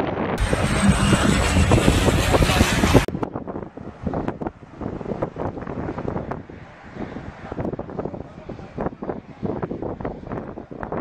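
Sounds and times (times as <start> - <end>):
jet airliner passing overhead: 0.0 - 11.0
wind buffeting microphone: 0.0 - 11.0.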